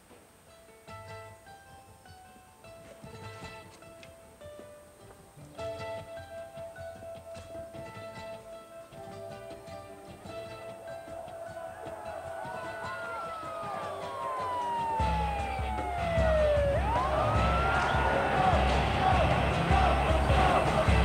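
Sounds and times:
crowd noise: 0:00.0 - 0:21.0
siren wailing: 0:11.7 - 0:19.7.

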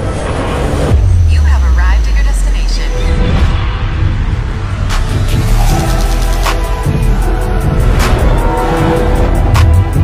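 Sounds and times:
person's voice: 0:01.3 - 0:03.2.

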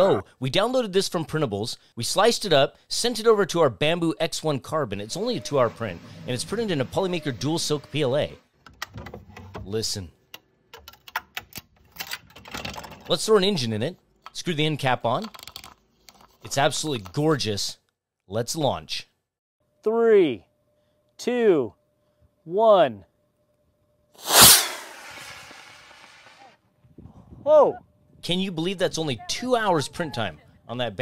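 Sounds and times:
rocket motor whoosh and hiss: 0:24.2 - 0:26.5.

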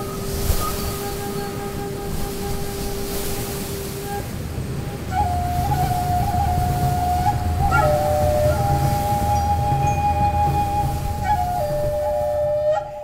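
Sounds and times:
flute playing slow held notes: 0:00.0 - 0:13.0.

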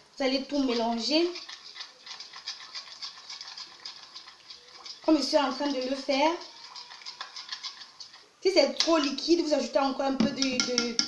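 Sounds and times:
metal spoon stirring in a bowl: 0:00.3 - 0:11.0.

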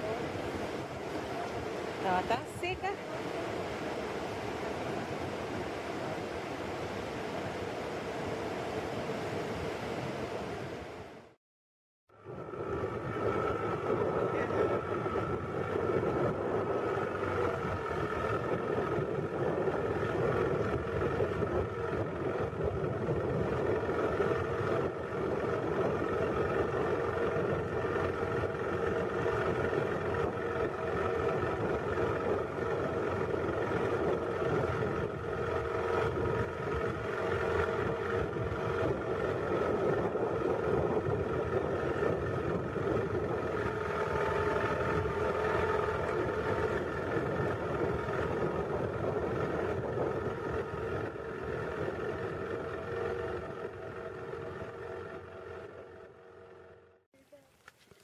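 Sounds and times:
boat engine running: 0:00.0 - 0:11.4, 0:12.1 - 0:58.0.

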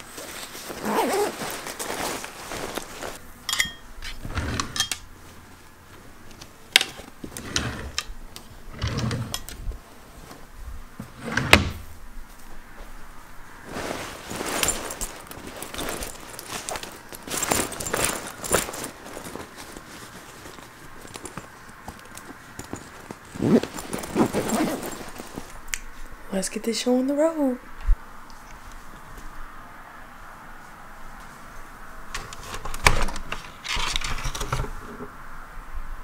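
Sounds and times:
rustling: 0:00.0 - 0:26.2
drawer pulled open: 0:04.0 - 0:05.0, 0:07.4 - 0:08.1, 0:08.7 - 0:09.6, 0:11.1 - 0:11.8.

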